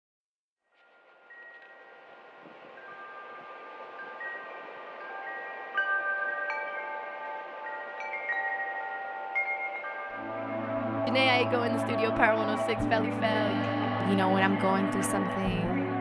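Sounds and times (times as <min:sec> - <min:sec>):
chimes ringing: 0:00.8 - 0:15.8.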